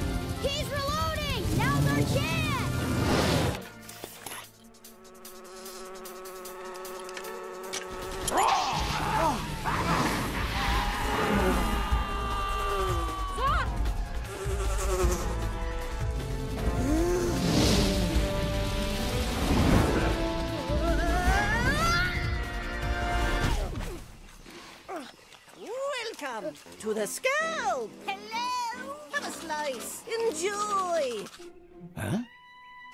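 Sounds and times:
wasps buzzing past: 0:04.4 - 0:08.3, 0:14.0 - 0:21.2.

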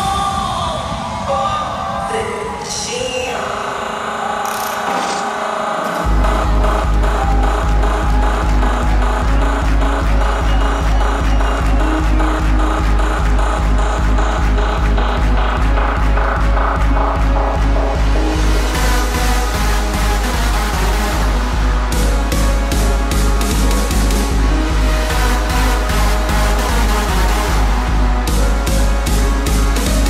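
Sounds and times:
hardstyle dance music: 0:00.0 - 0:30.0
heavy kick drum: 0:06.0 - 0:30.0.

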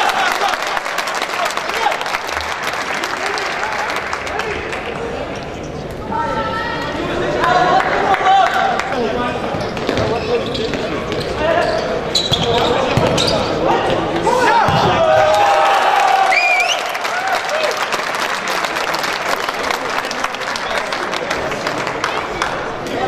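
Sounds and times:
players shouting: 0:12.6 - 0:17.8.

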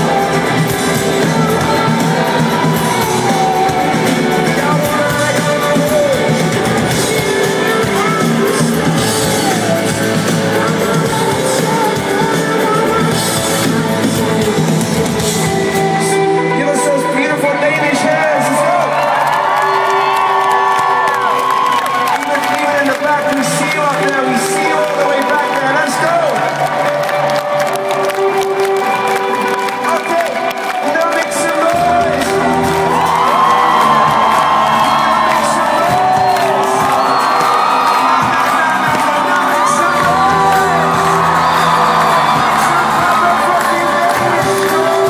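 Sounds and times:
band music: 0:00.0 - 0:45.0
concert crowd cheering and screaming: 0:00.0 - 0:45.0.

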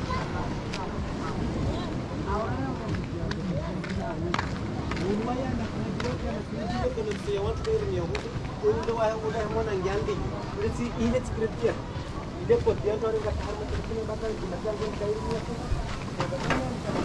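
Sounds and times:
voices talking and calling out: 0:00.0 - 0:17.0.

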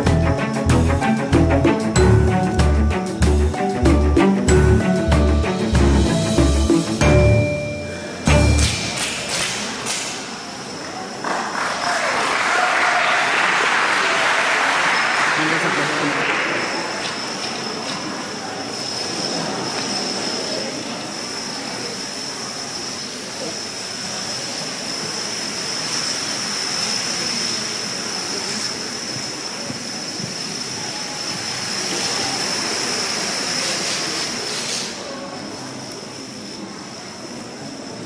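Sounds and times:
steady high whine: 0:00.0 - 0:11.8, 0:14.7 - 0:38.0.

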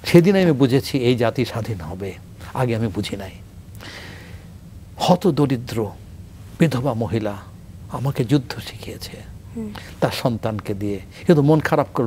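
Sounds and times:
man talking: 0:00.0 - 0:03.4, 0:05.0 - 0:06.0, 0:06.6 - 0:09.3, 0:09.9 - 0:12.0.

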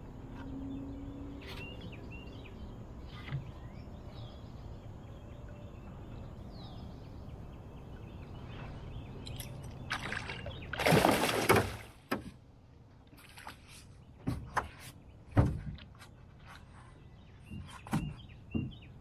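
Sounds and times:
fish splashing at surface: 0:09.9 - 0:11.9.

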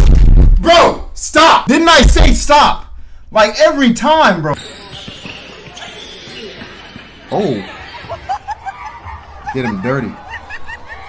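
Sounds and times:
faint voices: 0:04.6 - 0:11.0.

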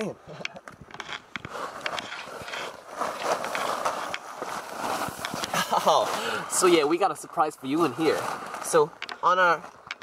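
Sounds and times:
tent fabric rustling: 0:01.5 - 0:09.8.

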